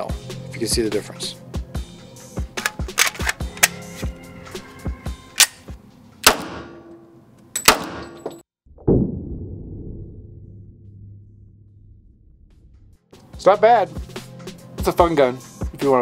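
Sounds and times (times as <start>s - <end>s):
background music with beat: 0.0s - 5.3s, 13.1s - 16.0s
pistol gunshots indoors: 6.2s - 6.9s, 7.7s - 8.2s.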